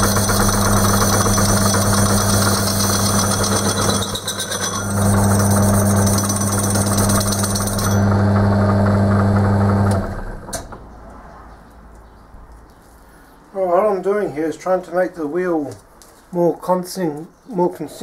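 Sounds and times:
cutting tool hissing on metal: 0:00.0 - 0:04.0
lathe motor hum: 0:00.0 - 0:10.2
lathe winding down: 0:00.0 - 0:10.6.

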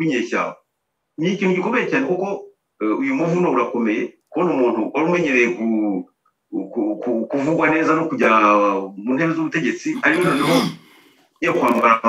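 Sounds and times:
man talking over video call: 0:00.0 - 0:12.0.

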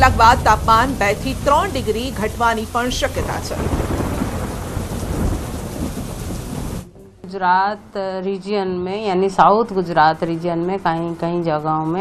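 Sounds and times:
heavy rain pouring: 0:00.0 - 0:07.0.

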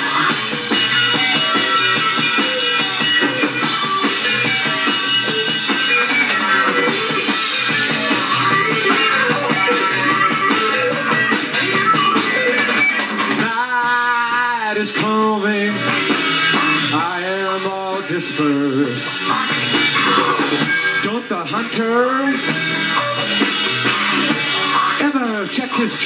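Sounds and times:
rock band playing: 0:00.0 - 0:26.0
person singing: 0:13.4 - 0:16.0, 0:16.8 - 0:22.4.

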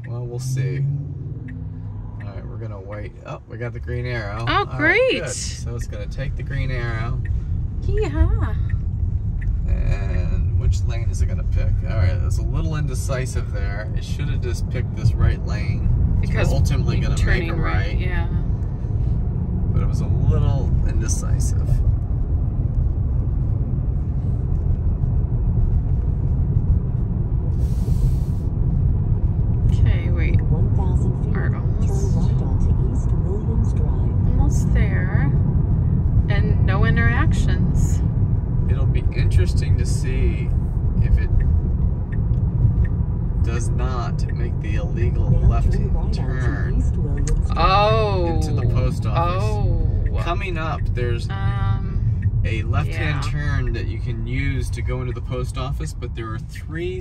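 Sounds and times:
voices: 0:00.0 - 0:08.8, 0:09.4 - 0:18.4, 0:19.8 - 0:21.8, 0:29.7 - 0:35.4, 0:36.3 - 0:38.0, 0:38.7 - 0:41.5, 0:43.4 - 0:57.0
road and tyre rumble in car: 0:00.0 - 0:57.0.

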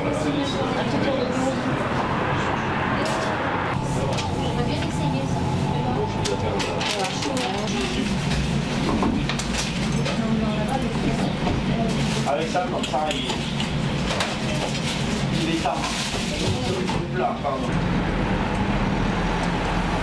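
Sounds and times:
indistinct voices talking: 0:00.0 - 0:08.7.

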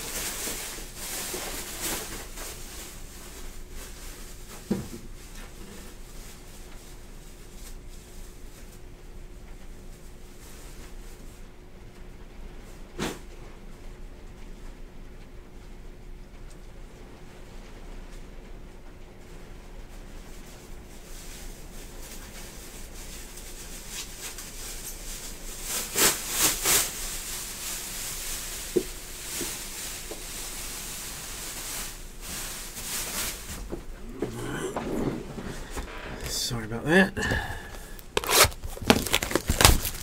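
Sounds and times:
plastic rustling: 0:00.0 - 0:08.8, 0:20.3 - 0:40.0.

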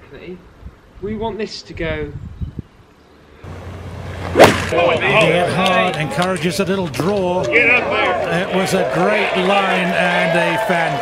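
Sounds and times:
golf club striking ball: 0:04.1 - 0:05.0.

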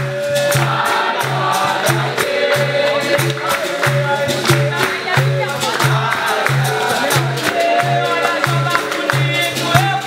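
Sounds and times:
group singing in chorus: 0:00.0 - 0:10.0
hand drum: 0:00.0 - 0:10.0
rhythmic hand clapping: 0:00.0 - 0:10.0.

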